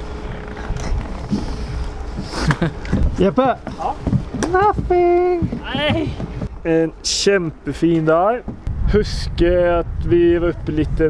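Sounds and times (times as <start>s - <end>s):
wind buffeting microphone: 8.4s - 11.0s.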